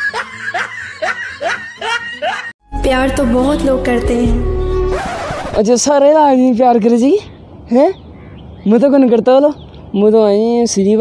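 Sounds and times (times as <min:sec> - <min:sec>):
person laughing: 0:00.0 - 0:02.5.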